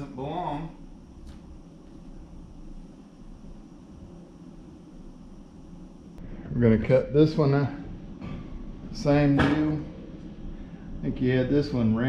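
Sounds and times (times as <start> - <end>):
low room rumble: 0.0 - 12.0.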